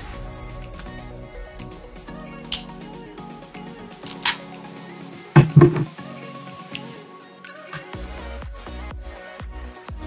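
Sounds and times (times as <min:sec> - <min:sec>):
background music with held notes: 0:00.0 - 0:10.0
crab shell cracking: 0:04.0 - 0:04.4
loud dull thumps: 0:05.4 - 0:05.9.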